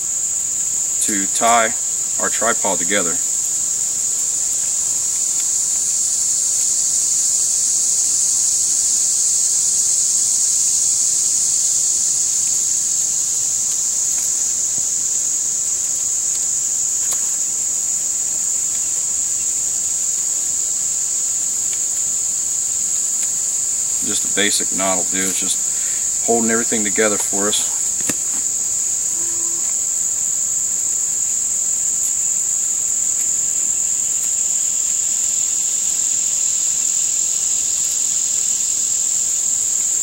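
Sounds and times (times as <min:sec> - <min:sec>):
insects buzzing: 0:00.0 - 0:40.0.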